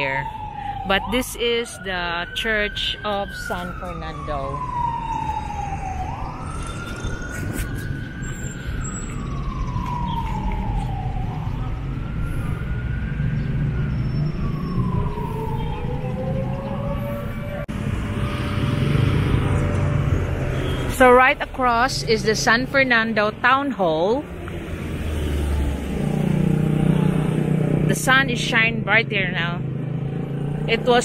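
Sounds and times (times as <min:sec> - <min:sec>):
siren wailing: 0:00.0 - 0:31.0
street traffic rumbling: 0:00.0 - 0:31.0
lower rising tone: 0:02.2 - 0:20.8.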